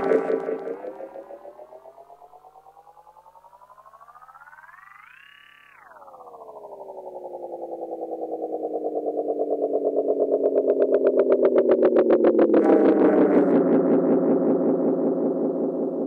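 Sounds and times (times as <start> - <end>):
bright hissy synth layer: 0.0 - 1.3
pulsing synthesizer tone sliding down: 0.0 - 16.0.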